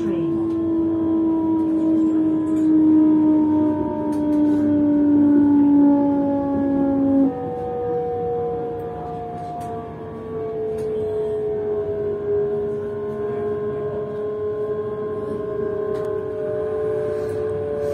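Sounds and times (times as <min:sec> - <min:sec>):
train motor whine: 0:00.0 - 0:17.9
train rumbling on track: 0:00.0 - 0:17.9.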